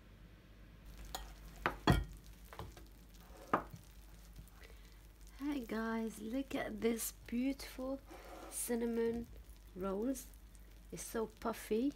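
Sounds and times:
glass dish knocking on table: 0:01.6 - 0:02.1.

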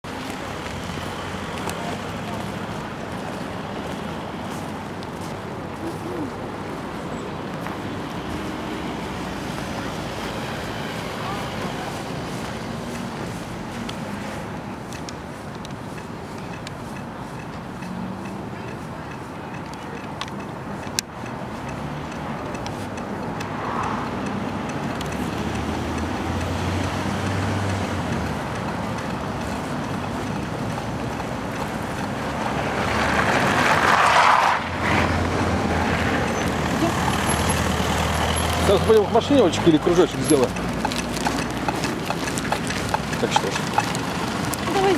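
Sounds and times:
road traffic: 0:00.0 - 0:44.9
car passing close: 0:21.3 - 0:44.9.

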